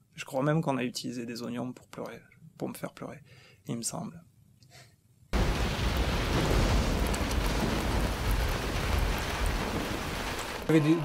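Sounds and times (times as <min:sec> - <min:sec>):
deep low rumble: 0:05.4 - 0:10.6
heavy rain falling: 0:05.4 - 0:11.0.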